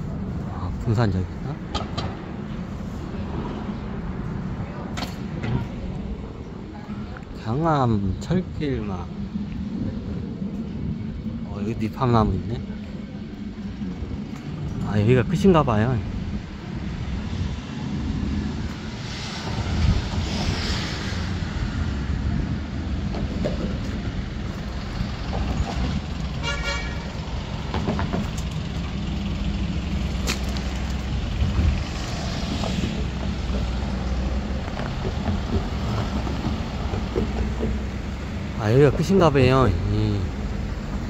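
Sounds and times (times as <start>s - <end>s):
traffic rumble: 0.0s - 41.0s
vehicles passing: 0.0s - 41.0s
vehicle horn toot: 26.4s - 27.2s.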